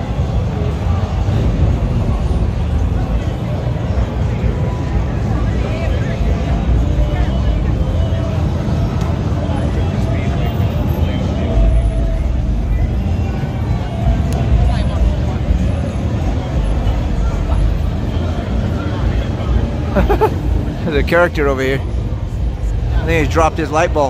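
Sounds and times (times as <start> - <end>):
people talking: 0.0 - 24.0
rumble of car engines and tyres: 0.0 - 24.0.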